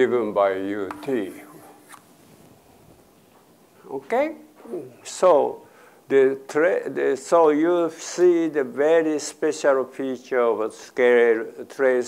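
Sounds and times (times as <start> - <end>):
man speaking: 0.0 - 1.8.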